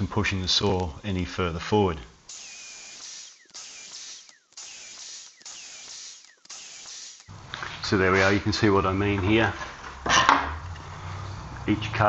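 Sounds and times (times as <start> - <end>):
track saw cutting: 2.3 - 8.0.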